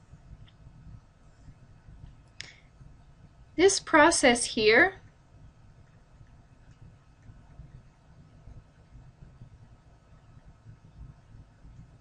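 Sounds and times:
faint low room noise: 0.0 - 12.0.

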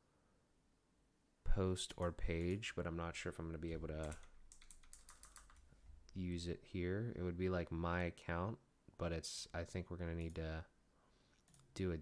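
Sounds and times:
computer keyboard typing: 3.9 - 5.6, 11.4 - 11.8.

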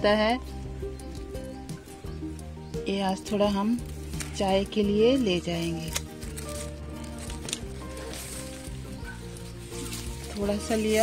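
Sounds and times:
instrumental music: 0.0 - 11.0
pruning shears snipping: 5.3 - 11.0.

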